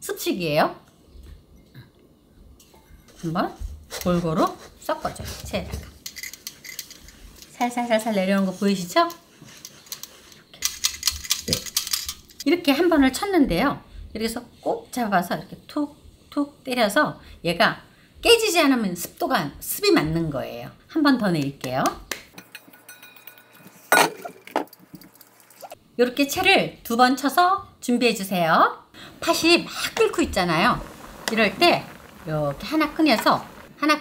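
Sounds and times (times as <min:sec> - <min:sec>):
steel kitchenware knocking and clinking: 0:22.3 - 0:24.8.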